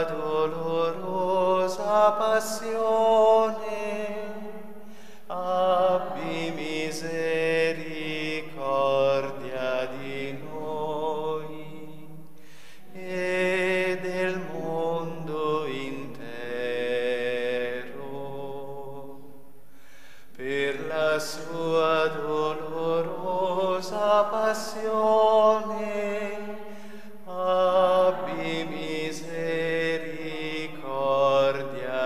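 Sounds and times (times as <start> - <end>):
prayer chanted in long notes: 0.0 - 12.1, 12.8 - 19.3, 20.4 - 32.0.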